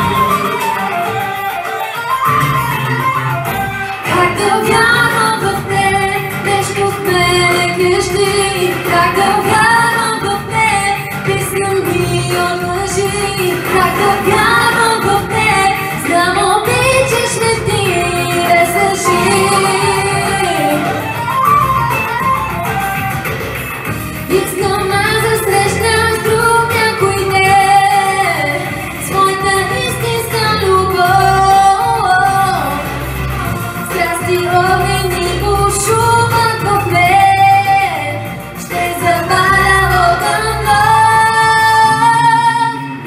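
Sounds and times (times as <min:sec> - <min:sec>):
backing music: 0:00.0 - 0:43.0
woman singing pop song: 0:03.8 - 0:21.8, 0:24.2 - 0:43.0.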